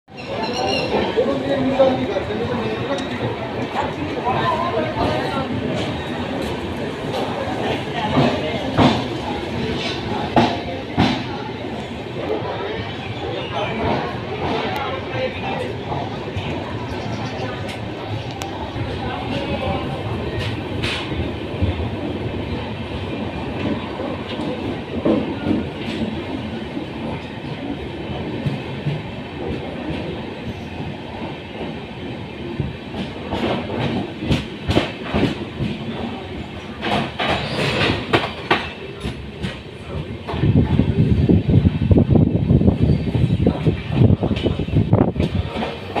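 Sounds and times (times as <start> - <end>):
train wheels rumbling on rails: 0.1 - 46.0.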